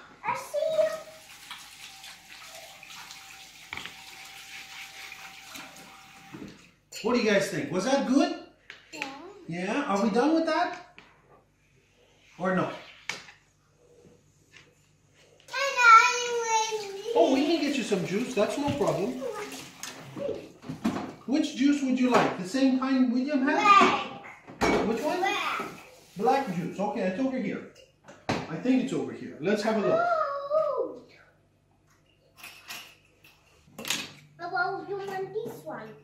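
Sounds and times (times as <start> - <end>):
child's voice: 0.2 - 1.2, 8.9 - 9.5, 15.5 - 17.6, 19.0 - 20.6, 23.4 - 24.3, 25.0 - 25.8, 29.8 - 31.1, 34.4 - 36.0
faucet running into steel sink: 0.8 - 6.7, 16.8 - 20.2.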